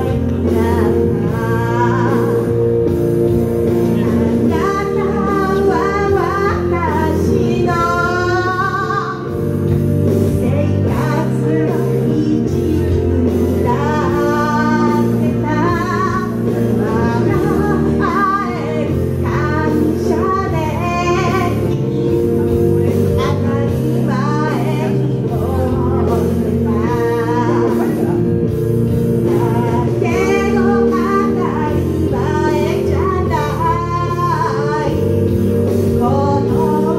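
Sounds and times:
instrumental accompaniment: 0.0s - 36.9s
woman singing into microphone: 0.0s - 36.9s.

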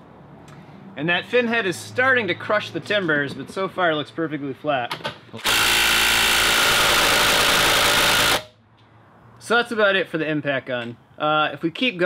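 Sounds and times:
impact gun hammering on a nut: 5.4s - 8.5s.

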